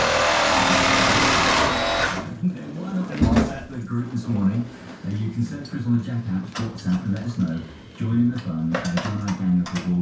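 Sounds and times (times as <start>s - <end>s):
man speaking: 2.3s - 10.0s.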